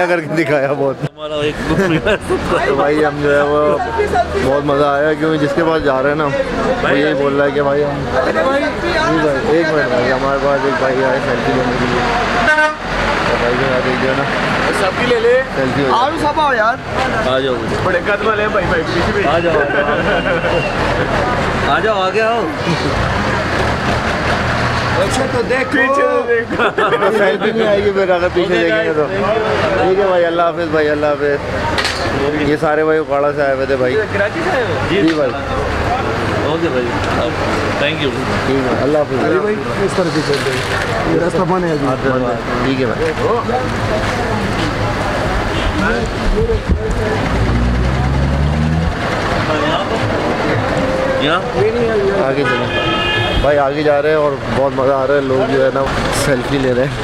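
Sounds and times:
people talking: 0.0 - 57.0
street noise: 0.0 - 57.0.

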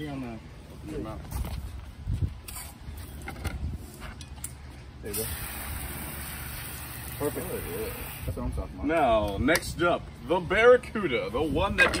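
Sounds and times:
footsteps on a wooden deck: 0.2 - 4.9.

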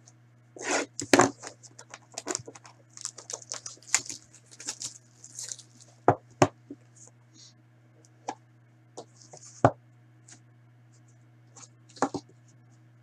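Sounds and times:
crinkles and rustles: 1.0 - 6.0
plastic wrapping tearing: 1.0 - 6.0.

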